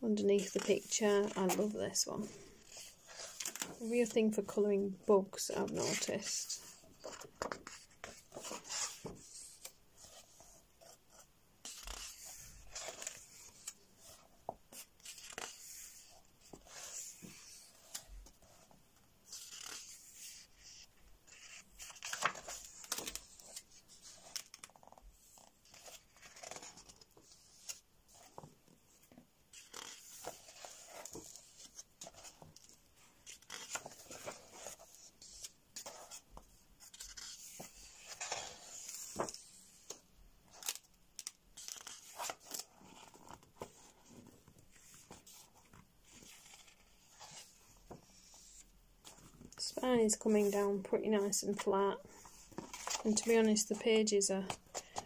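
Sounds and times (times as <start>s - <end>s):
paper pages rustling: 0.4s - 4.6s, 5.6s - 55.0s.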